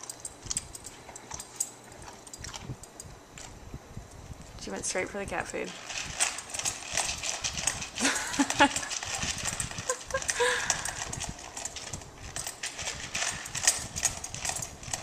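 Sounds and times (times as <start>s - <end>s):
dog crunching kibble: 0.0s - 3.6s, 5.7s - 15.0s.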